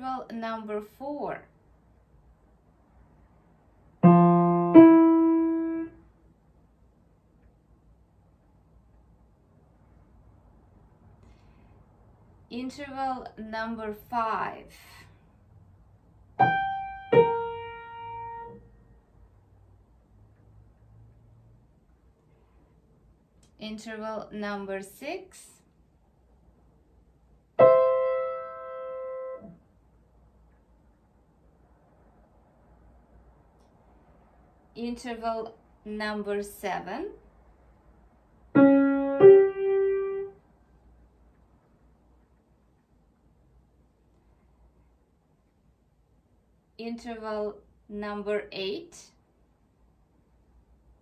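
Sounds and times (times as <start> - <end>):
piano notes: 4.0 - 6.0, 16.4 - 18.6, 27.6 - 29.6, 38.5 - 40.4.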